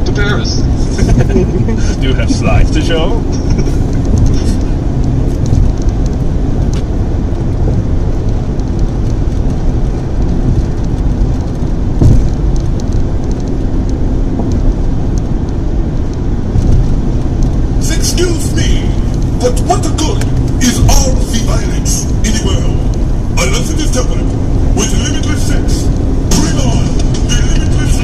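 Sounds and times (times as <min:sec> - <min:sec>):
car tyre and engine rumble: 0:00.0 - 0:28.0
brief thump: 0:12.0 - 0:12.4.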